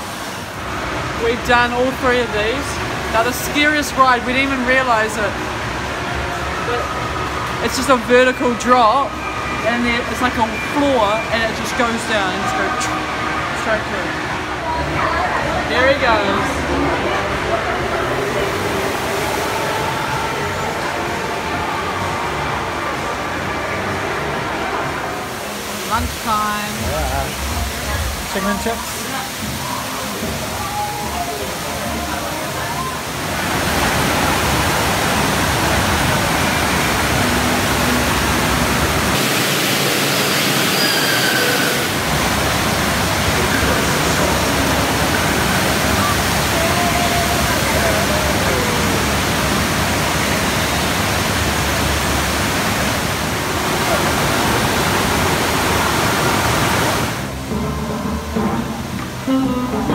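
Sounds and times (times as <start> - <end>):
rushing water: 0.0 - 59.9.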